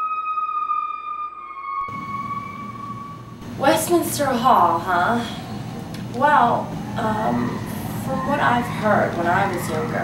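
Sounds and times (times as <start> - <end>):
high electronic tone: 1.5 - 3.5.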